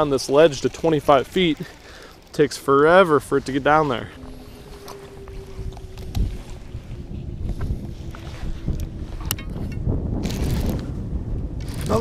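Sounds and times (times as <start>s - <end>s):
wind buffeting microphone: 0.0s - 12.0s
faint steady hum: 0.3s - 10.2s.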